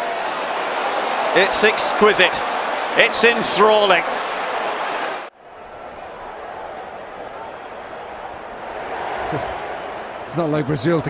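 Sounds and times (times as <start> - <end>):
loud crowd roar: 0.0 - 11.0.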